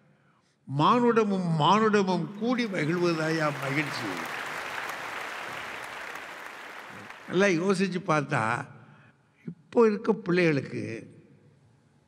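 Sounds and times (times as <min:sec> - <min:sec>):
audience applauding: 0:02.4 - 0:07.8.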